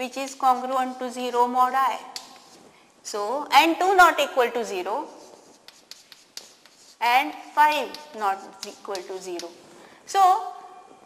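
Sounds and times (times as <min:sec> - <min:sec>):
chalk tapping and scratching: 0:00.0 - 0:02.8, 0:04.6 - 0:09.6.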